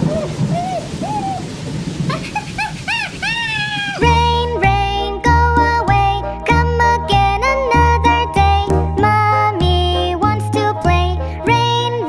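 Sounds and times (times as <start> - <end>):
rising-and-falling calls: 0.0 - 4.1
steady rain: 0.0 - 6.5.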